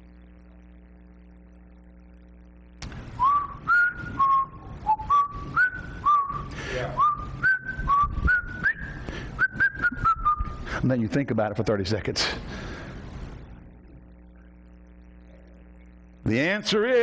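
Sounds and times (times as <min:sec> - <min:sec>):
man whistling a tune: 0:03.2 - 0:10.6.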